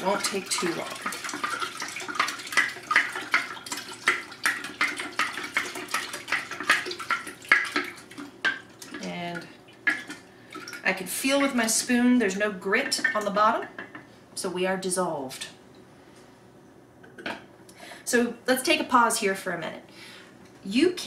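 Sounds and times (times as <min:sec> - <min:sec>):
liquid swishing: 0:00.0 - 0:09.0.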